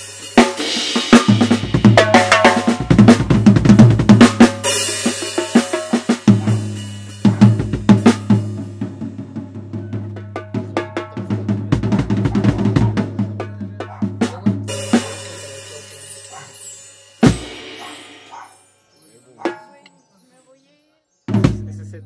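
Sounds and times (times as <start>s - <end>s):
cymbal crash: 0.0s - 8.9s, 14.7s - 18.3s
drum kit played with sticks: 0.0s - 18.5s, 19.4s - 19.9s, 21.3s - 22.0s.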